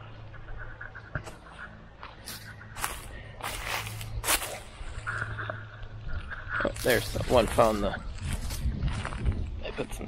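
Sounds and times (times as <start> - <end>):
footsteps crunching dry leaves: 2.0 - 5.3, 6.2 - 10.0.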